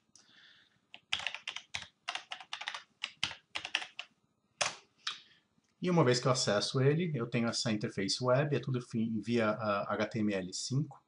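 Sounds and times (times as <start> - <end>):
computer keyboard typing: 0.9 - 4.8.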